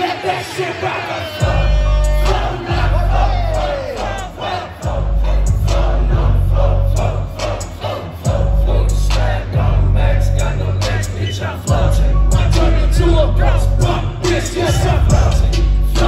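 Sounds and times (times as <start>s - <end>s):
crowd shouting along: 0.0s - 16.0s
hip-hop beat over sound system: 0.0s - 16.0s
deep bass notes: 1.4s - 4.2s, 4.8s - 16.0s.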